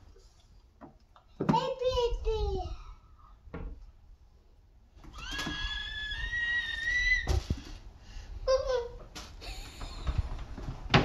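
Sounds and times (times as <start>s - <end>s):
child squealing whine: 5.1s - 7.4s.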